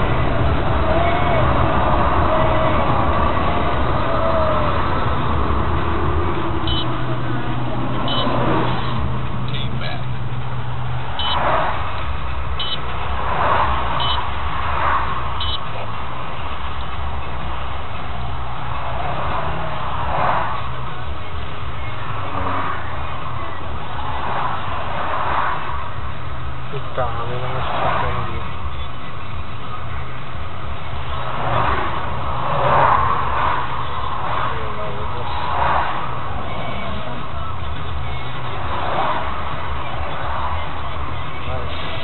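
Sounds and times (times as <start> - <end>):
indistinct voices: 0.0 - 25.9, 26.6 - 42.0
low engine-like rumble: 0.0 - 42.0
short electronic beeps: 6.6 - 7.0, 8.1 - 8.4, 11.2 - 11.4, 12.6 - 12.8, 14.0 - 14.2, 15.4 - 15.7.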